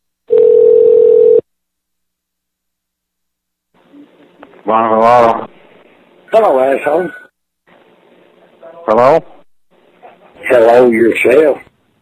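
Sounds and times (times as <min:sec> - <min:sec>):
telephone line tone: 0:00.3 - 0:01.4.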